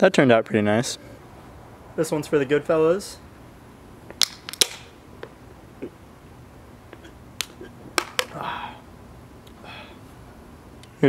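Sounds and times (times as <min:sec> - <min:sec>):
short breath: 0:09.6 - 0:10.0.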